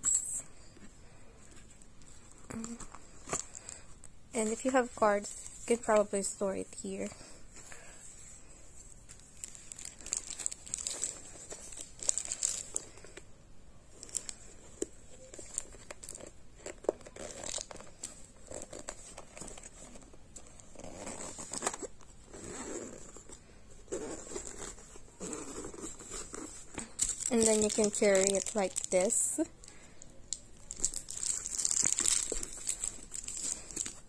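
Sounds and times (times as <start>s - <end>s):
plastic wrap crinkling: 2.5s - 7.1s, 8.8s - 13.2s, 13.9s - 22.1s, 23.9s - 34.0s
zipper closing: 20.7s - 23.2s, 23.9s - 26.5s.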